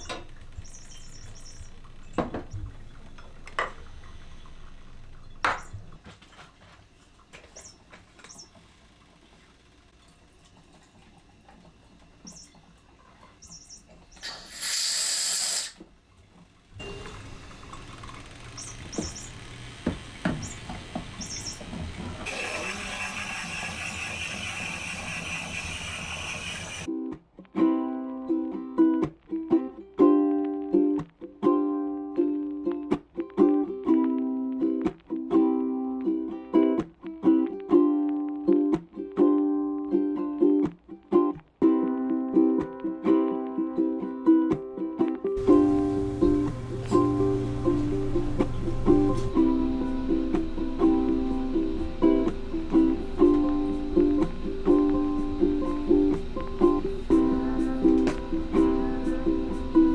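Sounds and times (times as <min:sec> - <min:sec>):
short loud hiss: 0:14.2 - 0:15.8
coffee machine running: 0:16.5 - 0:26.9, 0:45.4 - 0:59.9
ukulele music: 0:26.8 - 0:59.9.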